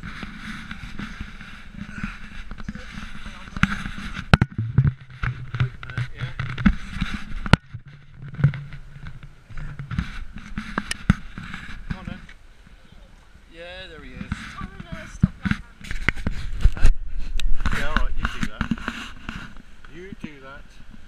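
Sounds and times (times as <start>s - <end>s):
steady rushing noise: 0.0s - 12.4s.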